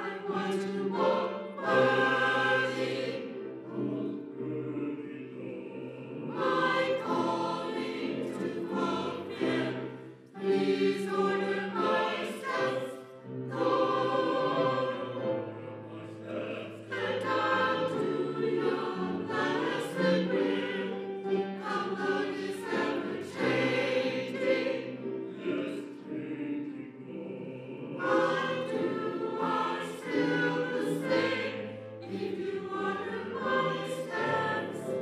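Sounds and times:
church choir singing: 0.0 - 35.0.

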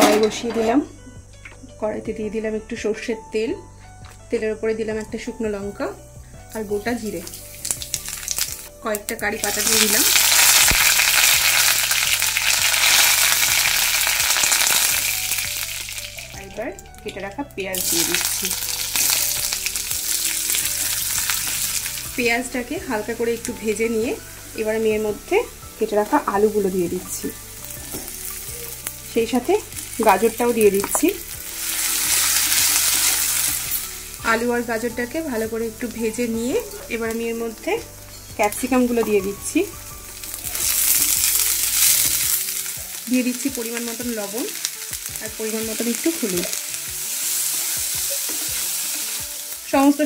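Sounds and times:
leaves sizzling in hot oil: 1.8 - 50.0.

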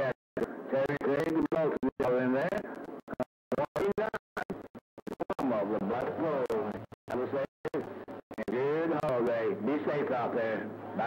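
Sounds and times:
man's voice over cb radio: 0.0 - 11.0.

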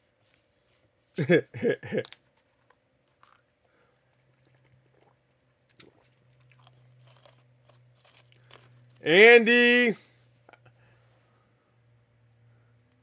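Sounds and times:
low steady hum: 0.0 - 13.0
chewing and crunching snack: 1.8 - 9.1.

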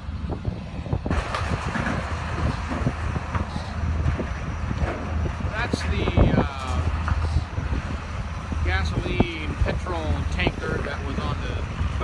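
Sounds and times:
ferry engine drone: 0.0 - 12.0
truck driving down ramp: 0.0 - 12.0.

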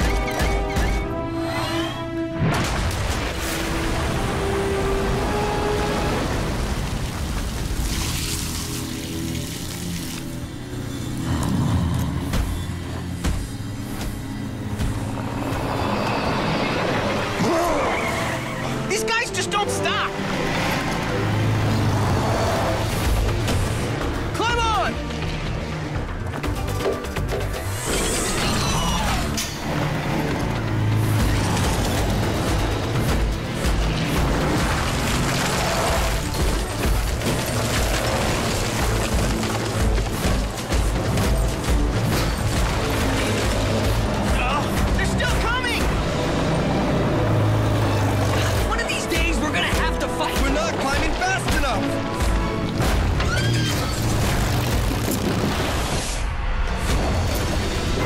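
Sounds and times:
cartoon background music: 30.9 - 55.4.

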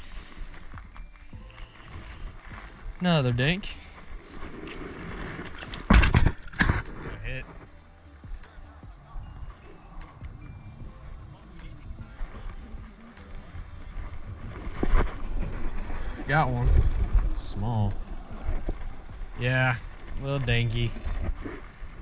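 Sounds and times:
fishing reel clicks and rustles: 0.0 - 7.0
wind rumble on microphone: 9.2 - 22.0.

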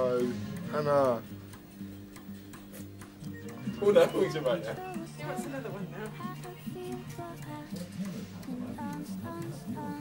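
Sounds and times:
light regular ticking: 0.0 - 10.0.

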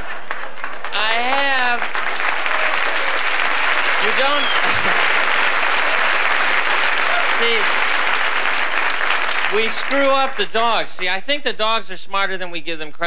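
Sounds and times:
audience clapping: 0.0 - 11.2.

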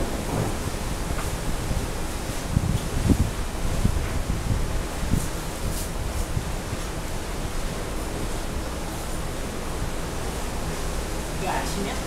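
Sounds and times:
wind blowing over microphone: 0.0 - 7.6.

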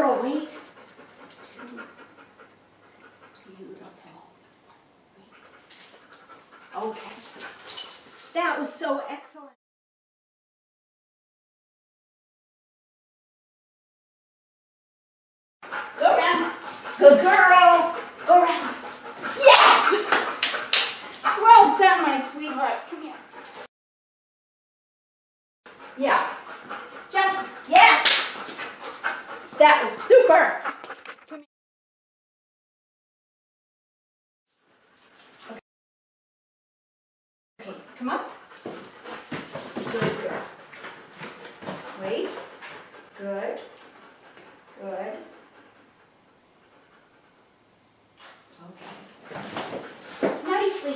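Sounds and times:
woman's voice: 0.0 - 0.6, 3.4 - 4.4, 6.7 - 7.4, 8.3 - 9.6, 16.0 - 18.8, 21.3 - 23.2, 26.0 - 26.4, 29.6 - 30.6, 37.6 - 38.3, 39.9 - 40.5, 42.0 - 42.4, 43.2 - 43.7, 44.8 - 45.4, 50.4 - 50.9
sharp slaps: 19.5 - 21.0, 27.8 - 28.4.

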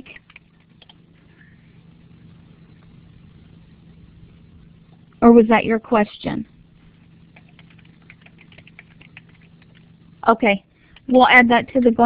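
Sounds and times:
keyboard typing: 0.0 - 1.0, 7.3 - 9.9
low hum: 0.0 - 12.0.

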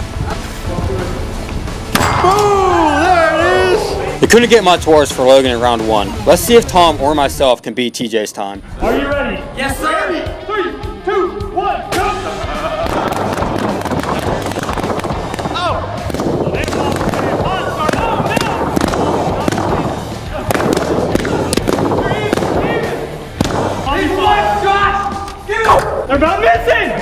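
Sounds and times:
background music: 0.0 - 27.0
people shouting: 2.0 - 4.2, 10.4 - 27.0
balloons popping: 12.7 - 24.1.

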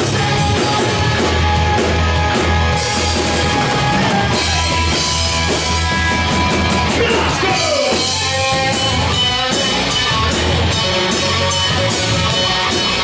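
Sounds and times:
bass guitar: 0.0 - 13.0
drum kit: 0.0 - 13.0
electric guitar: 0.0 - 13.0.

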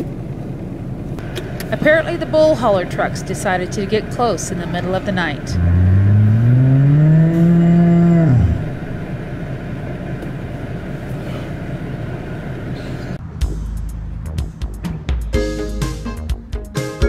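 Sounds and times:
steady rumbling background: 0.0 - 15.3
cow mooing: 5.5 - 9.1.

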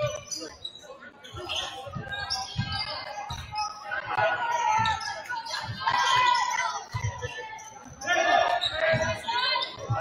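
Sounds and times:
voices calling out in a gym: 0.0 - 10.0.

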